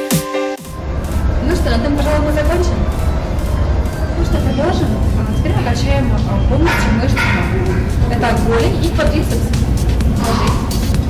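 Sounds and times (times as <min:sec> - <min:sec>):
background music with low bass: 0:00.0 - 0:11.0
woman speaking: 0:01.4 - 0:02.9, 0:04.1 - 0:09.6, 0:10.2 - 0:10.8.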